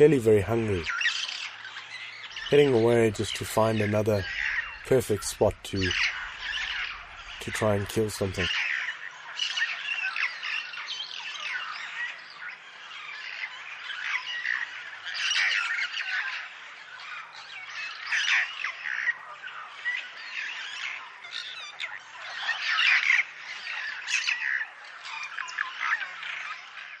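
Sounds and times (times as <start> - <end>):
birds squawking and chirping: 0.0 - 27.0.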